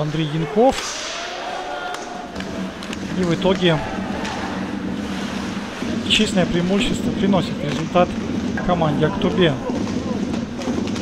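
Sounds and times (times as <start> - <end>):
ice arena crowd ambience: 0.0 - 11.0.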